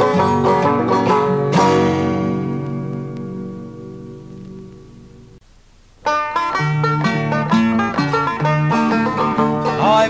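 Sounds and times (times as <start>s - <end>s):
banjo: 0.0s - 4.2s, 6.0s - 10.0s
acoustic guitar: 0.0s - 10.0s.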